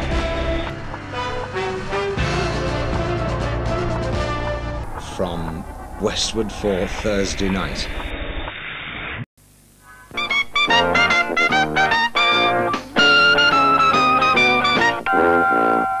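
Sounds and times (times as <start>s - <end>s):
brassy trumpet jingle: 10.2s - 16.0s.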